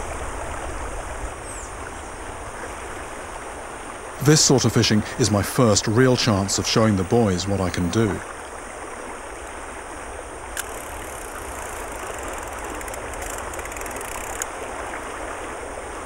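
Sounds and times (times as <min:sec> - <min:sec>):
river water rushing over rocks: 0:00.0 - 0:16.0.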